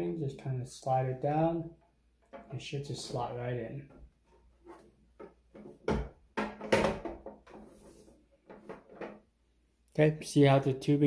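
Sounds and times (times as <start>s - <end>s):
plastic parts knocking and clicking: 5.1s - 7.6s.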